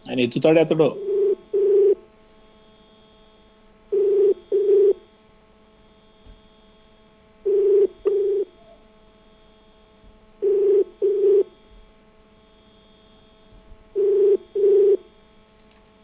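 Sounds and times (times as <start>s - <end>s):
faint line hum: 0.0s - 16.0s
telephone ringback double rings: 1.0s - 2.0s, 3.9s - 5.0s, 7.5s - 8.5s, 10.4s - 11.5s, 14.0s - 15.0s.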